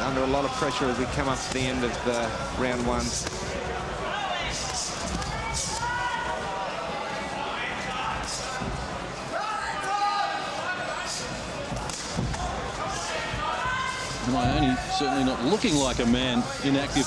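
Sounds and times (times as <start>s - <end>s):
people shouting: 4.0s - 6.6s, 11.9s - 15.9s.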